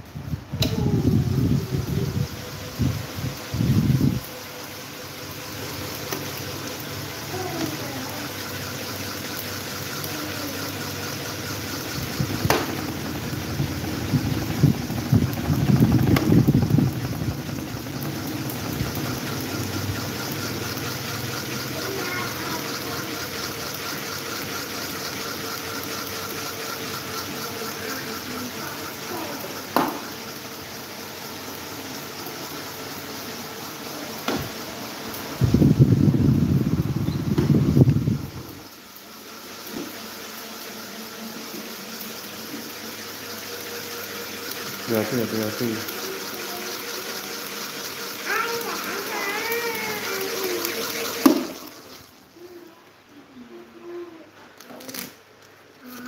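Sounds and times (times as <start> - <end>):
electric fans running: 0.0 - 56.0.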